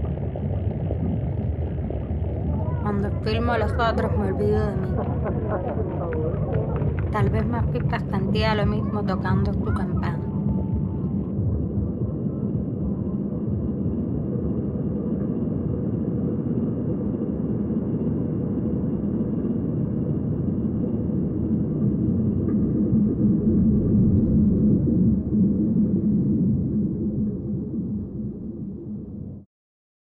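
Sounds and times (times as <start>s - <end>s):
low rumble: 0.0s - 29.5s.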